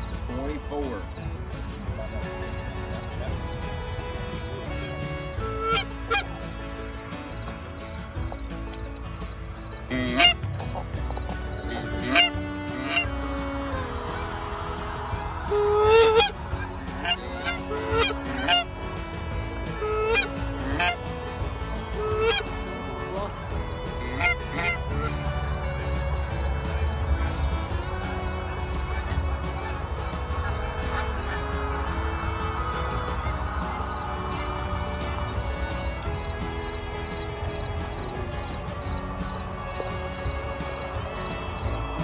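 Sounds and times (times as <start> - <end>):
geese honking: 0.0 - 42.0.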